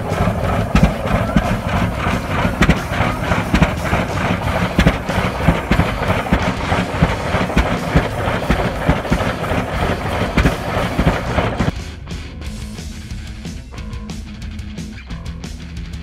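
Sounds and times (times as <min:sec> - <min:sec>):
sharp engine knocks: 0:00.0 - 0:11.7
tractor engine rumbling: 0:00.0 - 0:11.7.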